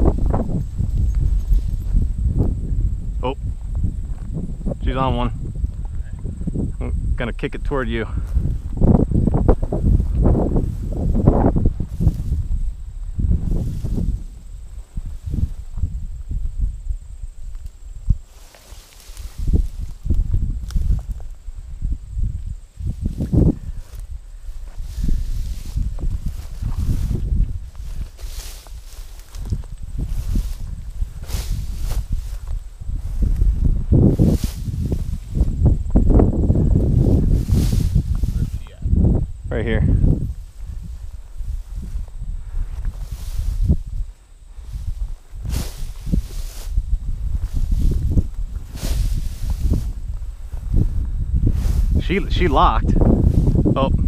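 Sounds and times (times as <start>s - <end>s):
footsteps through dry grass: 0.0s - 6.6s, 8.1s - 53.8s
low rumble on microphone: 0.0s - 54.0s.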